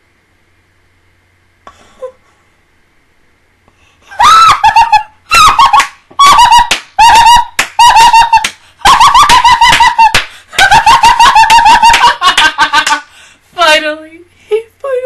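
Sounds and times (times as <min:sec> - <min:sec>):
woman screaming excitedly: 0:04.1 - 0:10.2.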